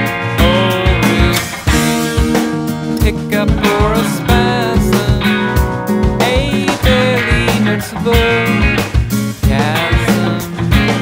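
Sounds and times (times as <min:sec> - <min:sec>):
drum kit beat: 0:00.0 - 0:11.0
guitars playing sustained chords: 0:00.0 - 0:11.0.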